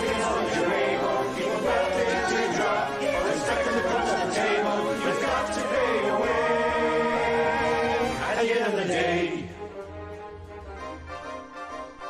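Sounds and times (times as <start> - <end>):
chorus singing: 0.0 - 10.2.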